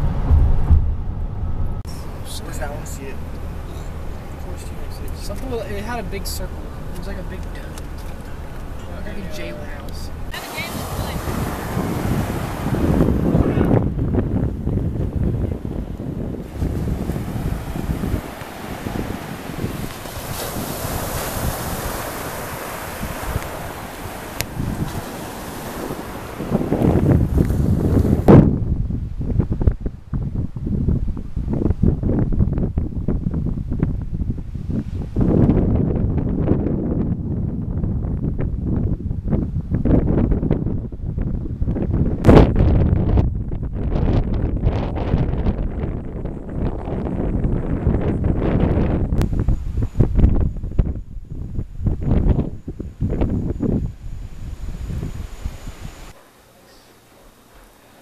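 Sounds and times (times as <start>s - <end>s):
ocean surf washing onto beach: 0.0s - 28.6s
wind buffeting microphone: 0.0s - 56.2s.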